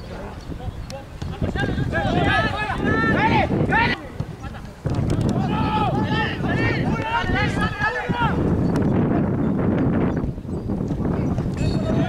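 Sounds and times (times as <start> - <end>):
people shouting: 1.5 - 4.1, 5.3 - 8.5.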